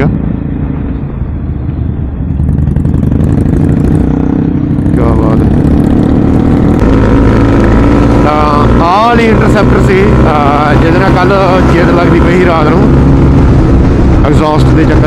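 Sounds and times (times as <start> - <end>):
motorcycle engine running: 0.0 - 15.0.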